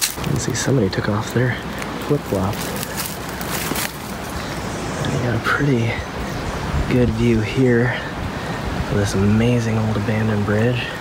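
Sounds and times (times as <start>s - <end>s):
footsteps on dry leaves and stones: 0.0s - 4.8s
wind noise on microphone: 1.8s - 11.0s.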